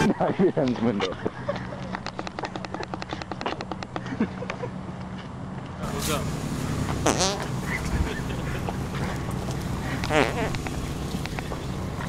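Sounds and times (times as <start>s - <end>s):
car engine and road hum: 1.5s - 12.0s.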